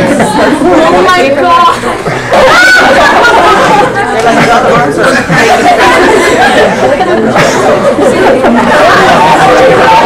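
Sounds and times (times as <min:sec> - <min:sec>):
girls chattering: 0:00.0 - 0:10.0.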